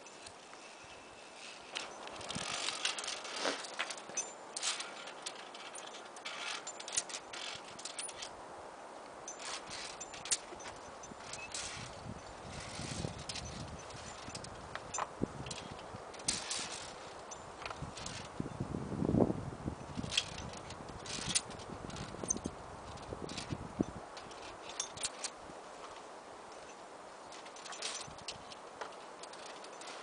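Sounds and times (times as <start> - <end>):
low rumble of handling: 0.0 - 30.0
boots scraping on rock: 0.3 - 5.0.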